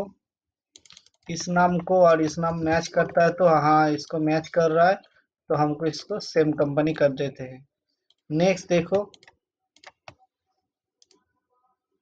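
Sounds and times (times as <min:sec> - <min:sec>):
computer mouse clicking: 0:00.8 - 0:01.4, 0:09.1 - 0:10.2, 0:11.0 - 0:11.2.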